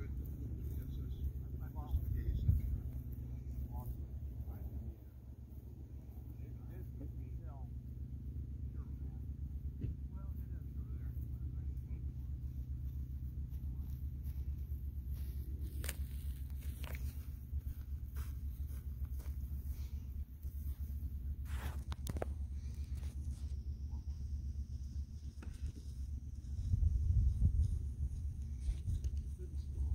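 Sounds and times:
faint distant voices: 0.0 - 25.6
low outdoor rumble: 0.0 - 29.9.

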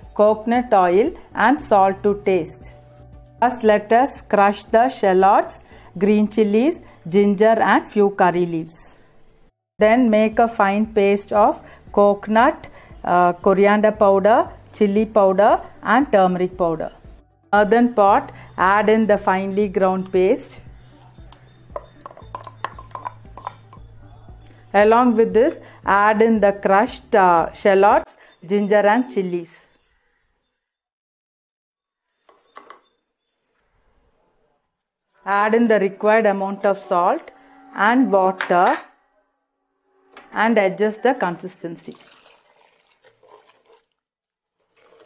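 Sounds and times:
wooden spoon tapping and scraping: 21.3 - 23.9
wooden spoon stirring: 21.8 - 23.9, 42.0 - 43.9, 44.6 - 45.0
water sloshing in a pot: 41.7 - 45.0.

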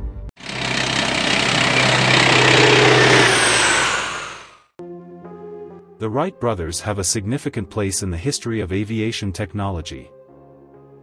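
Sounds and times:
aircraft flying past: 0.4 - 4.6.

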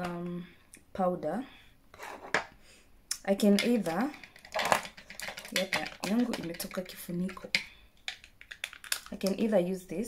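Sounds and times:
woman speaking: 0.0 - 1.6, 3.1 - 4.2, 5.4 - 7.6, 9.1 - 10.0
plastic powder case clicking: 3.5 - 9.4.

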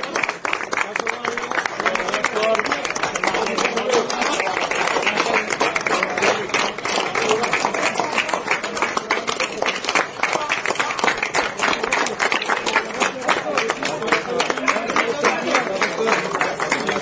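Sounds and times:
crowd clapping: 0.0 - 17.0.

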